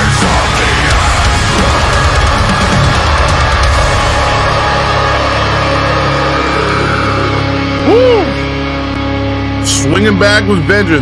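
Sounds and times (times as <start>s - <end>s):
heavy metal song: 0.0s - 11.0s.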